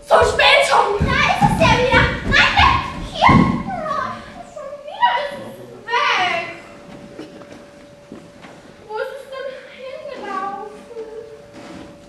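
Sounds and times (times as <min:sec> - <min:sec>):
overlapping high-pitched voices: 0:00.0 - 0:07.8.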